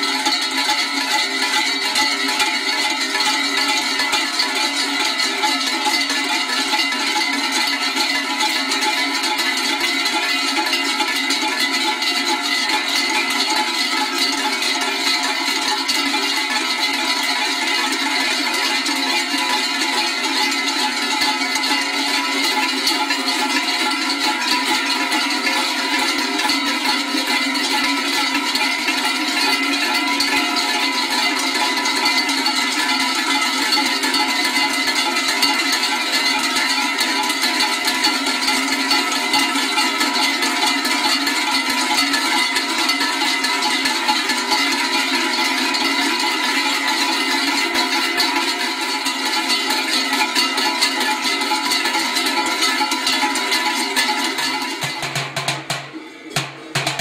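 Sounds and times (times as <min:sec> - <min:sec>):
cowbells clanging: 0:00.0 - 0:57.0.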